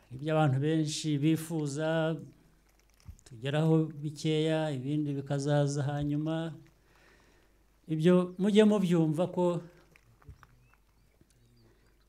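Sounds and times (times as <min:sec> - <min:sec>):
faint bird chirps: 0:10.2 - 0:12.0.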